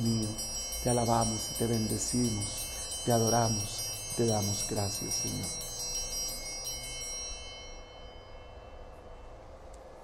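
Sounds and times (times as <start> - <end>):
high chime bells: 0.0 - 9.6
faint steady hum: 0.0 - 10.0.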